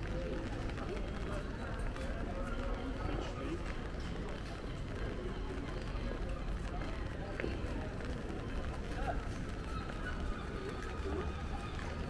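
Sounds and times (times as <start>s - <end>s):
low rumble of town noise: 0.0s - 12.0s
passers-by talking: 0.0s - 12.0s.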